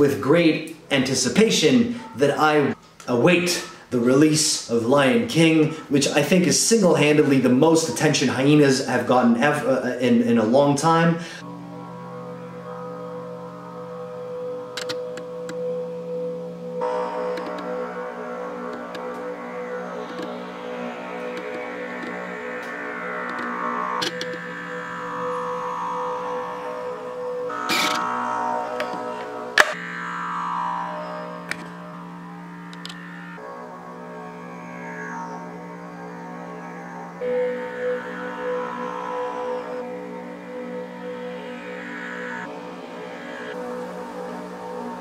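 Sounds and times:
drone music with sweeping overtones: 0:00.0 - 0:45.0.

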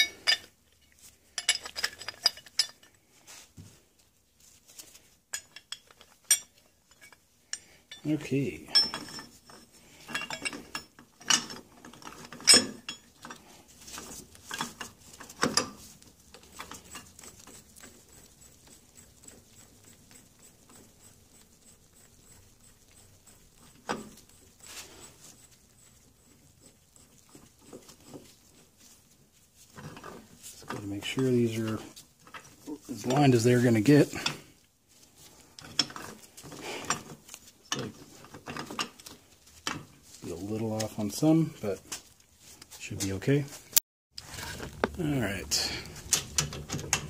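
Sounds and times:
metal parts clinking: 0:00.0 - 0:00.6, 0:01.3 - 0:03.0, 0:05.3 - 0:13.4.

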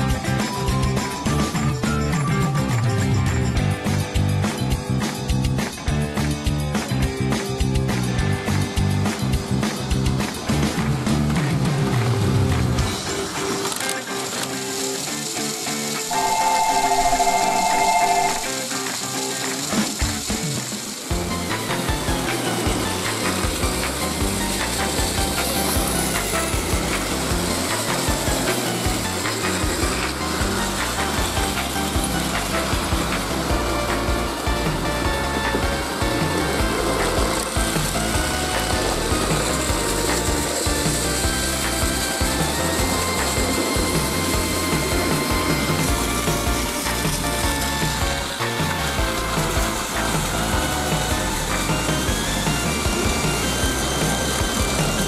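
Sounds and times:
background music: 0:00.0 - 0:55.0
wheels rattling on plastic track: 0:00.1 - 0:55.0
toy train motor whirring: 0:12.8 - 0:55.0.

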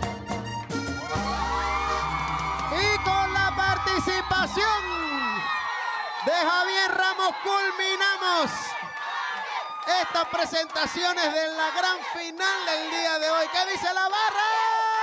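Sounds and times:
button accordion and band: 0:00.0 - 0:04.6
audience cheering and whooping: 0:00.9 - 0:15.0.

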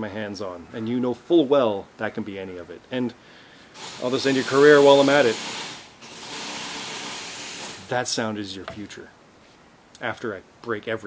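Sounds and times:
steady hiss: 0:01.4 - 0:11.0
person speaking: 0:07.9 - 0:09.1.

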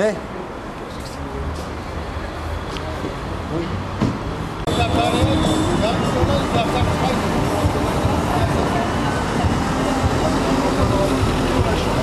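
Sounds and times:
rushing outdoor noise: 0:00.0 - 0:12.0
indistinct voices talking: 0:04.6 - 0:12.0.

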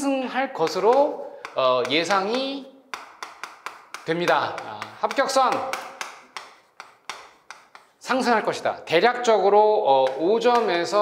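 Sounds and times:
chalk tapping on chalkboard: 0:00.6 - 0:08.6, 0:09.9 - 0:11.0.

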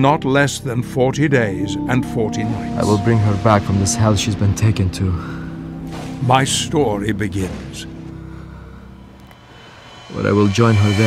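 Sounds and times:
low steady drone: 0:00.8 - 0:11.0.

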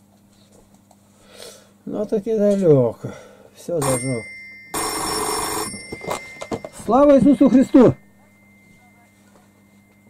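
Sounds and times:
telephone ringing: 0:03.8 - 0:10.0.

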